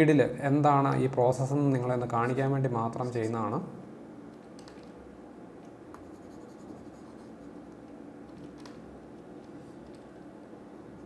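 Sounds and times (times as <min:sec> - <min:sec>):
low room hum: 0:00.0 - 0:11.0
mouse rubbing across desk: 0:06.0 - 0:07.7.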